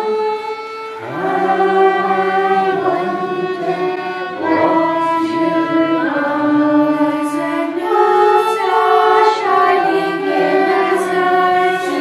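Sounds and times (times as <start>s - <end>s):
instrumental backing: 0.0s - 12.0s
young children singing: 0.0s - 12.0s.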